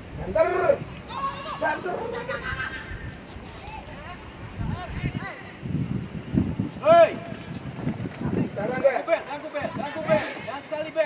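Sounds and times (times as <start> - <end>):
open-air pitch noise: 0.0 - 11.0
wavering high shout: 0.3 - 3.0.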